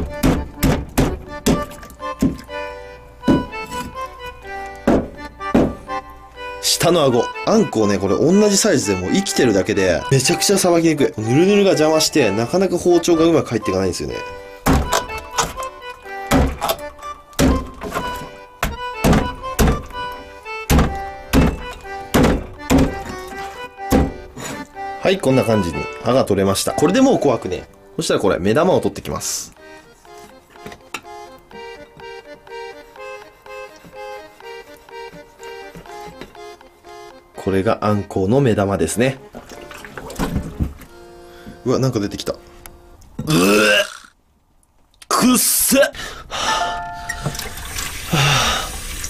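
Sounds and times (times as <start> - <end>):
knife chopping on cutting board: 0.0 - 2.4, 3.3 - 3.9, 4.8 - 5.8, 16.3 - 16.8, 17.4 - 19.9, 20.7 - 23.1, 23.9 - 24.6
background music: 0.0 - 43.9, 46.3 - 49.0.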